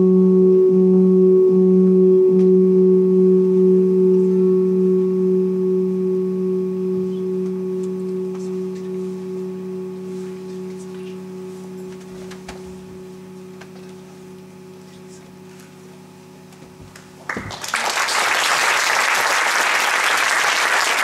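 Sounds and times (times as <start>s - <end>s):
low electronic drone: 0.0s - 17.3s.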